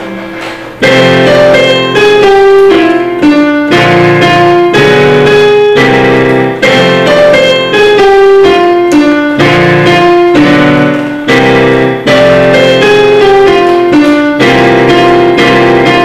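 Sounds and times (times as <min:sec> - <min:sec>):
digital piano chords: 0:00.0 - 0:16.0.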